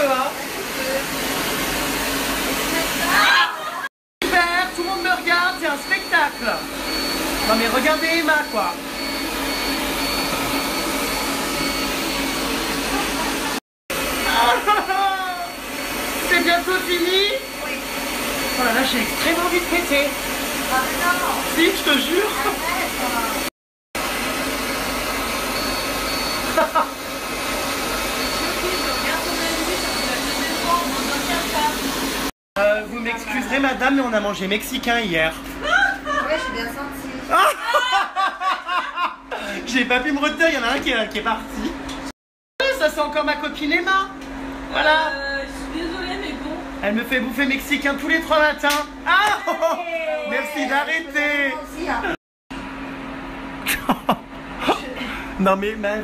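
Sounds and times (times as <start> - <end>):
cooling blower rushing air: 0.0 - 3.6, 4.2 - 37.2.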